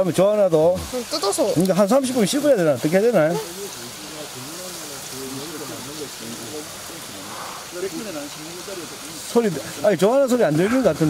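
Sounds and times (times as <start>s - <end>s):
faint voices talking: 0.0s - 11.0s
mountain stream rushing: 0.0s - 11.0s.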